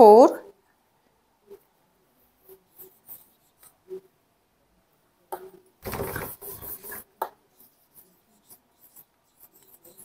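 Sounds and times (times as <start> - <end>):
marker pen scratching whiteboard: 1.5 - 4.1, 5.4 - 10.0.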